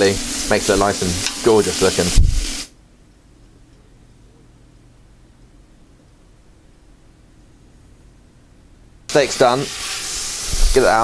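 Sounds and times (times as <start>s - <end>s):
steak sizzling in a hot pan: 0.0s - 2.7s, 9.1s - 11.0s.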